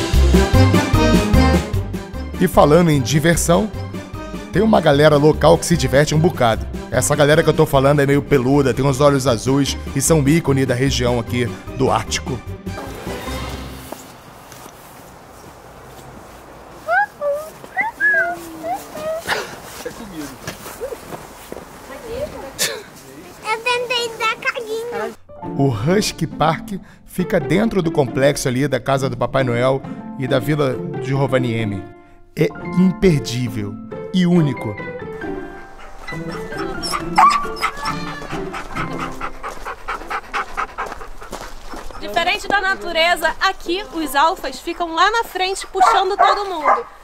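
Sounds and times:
background music: 0.0s - 14.3s, 24.7s - 41.2s
dog yelping: 16.8s - 19.3s, 35.4s - 42.2s, 45.1s - 47.0s
dogs whining and yipping: 16.9s - 19.2s, 35.4s - 42.2s, 45.6s - 47.0s.

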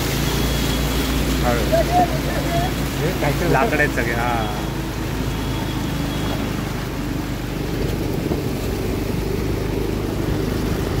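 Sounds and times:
water washing around wheels: 0.0s - 11.0s.

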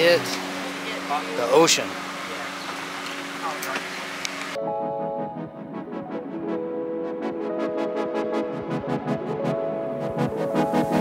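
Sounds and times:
sustained keyboard music: 4.5s - 11.0s.

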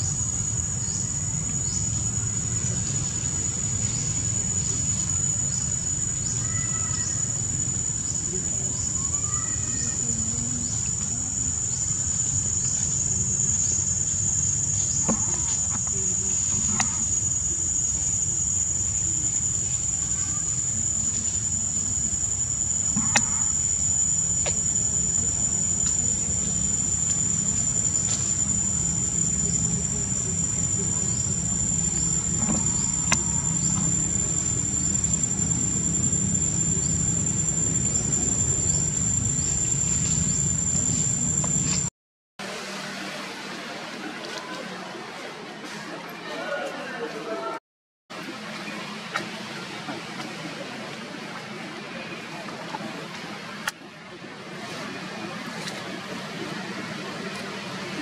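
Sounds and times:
faint rising chirps: 0.0s - 41.9s
insects droning: 0.0s - 41.9s
low steady rumble: 0.0s - 41.9s.

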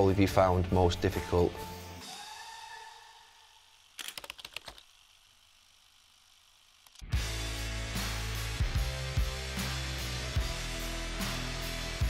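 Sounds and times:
rapid sharp clicks: 3.9s - 5.4s.

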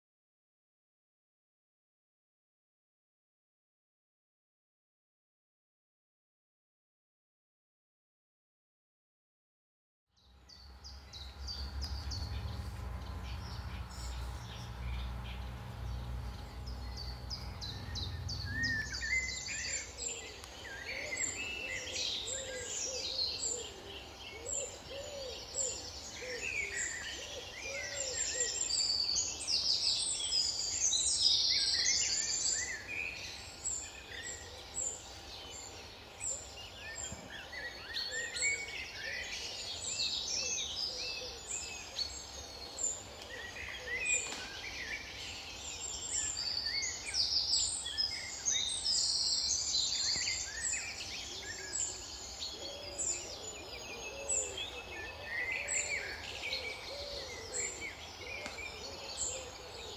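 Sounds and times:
lower repeated bird calls: 10.2s - 59.9s
songbirds chirping and trilling: 10.2s - 59.9s
steady low rumble: 10.4s - 20.0s.

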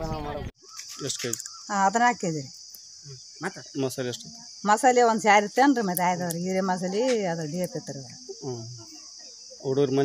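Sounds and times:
high-pitched insect buzz: 0.6s - 10.0s
woman talking: 4.7s - 8.2s.

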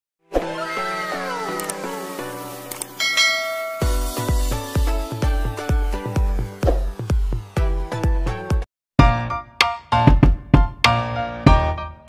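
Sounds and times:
electronic music with pitch sweeps: 0.5s - 8.6s
bright chime: 3.0s - 4.1s
heavy bass beat: 3.8s - 9.3s.

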